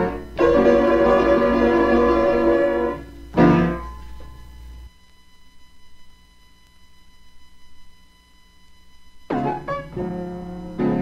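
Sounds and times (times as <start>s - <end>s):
blues piano chords: 0.0s - 4.5s, 9.3s - 11.0s
thin steady hum: 0.0s - 11.0s.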